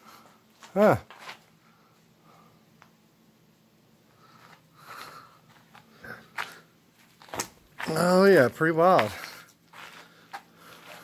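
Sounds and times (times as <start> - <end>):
faint scuffing and shuffling: 0.0 - 2.1, 4.3 - 11.0
man's voice: 7.8 - 9.4.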